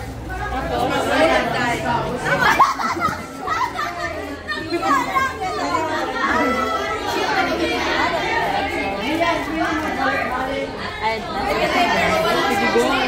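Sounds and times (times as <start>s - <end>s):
students chattering: 0.0s - 13.0s.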